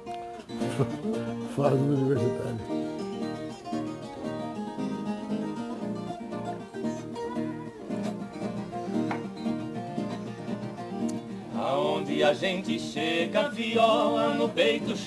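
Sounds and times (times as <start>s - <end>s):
nylon-string guitar: 0.0s - 15.0s
viola caipira: 0.0s - 15.0s.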